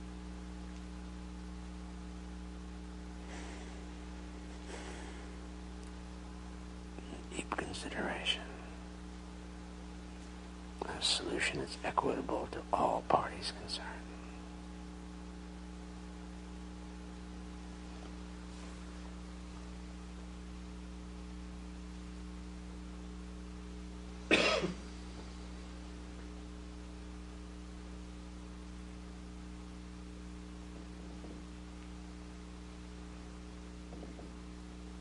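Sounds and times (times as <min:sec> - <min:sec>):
steady electrical hum: 0:00.0 - 0:35.0
person speaking softly: 0:06.9 - 0:09.0, 0:10.8 - 0:14.4
person coughing: 0:24.3 - 0:24.9.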